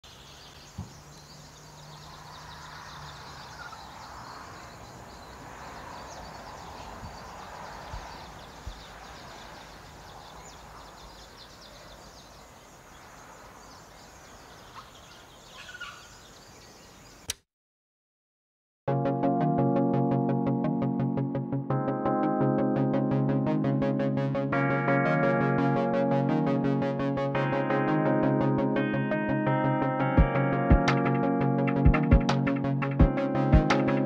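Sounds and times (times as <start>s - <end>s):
faint bird calls: 0.2s - 17.3s
sharp click: 17.2s - 17.4s.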